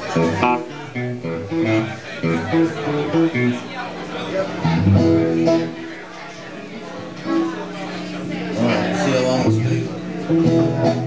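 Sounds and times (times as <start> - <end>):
upright bass plucked notes: 0.0 - 3.6, 4.6 - 5.9, 8.6 - 11.0
guitar plucked notes: 0.0 - 6.0, 8.5 - 11.0.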